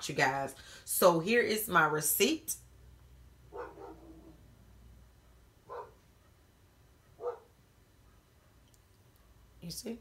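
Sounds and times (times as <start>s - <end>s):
dog barking: 3.5s - 4.4s, 5.6s - 6.4s, 7.0s - 8.6s.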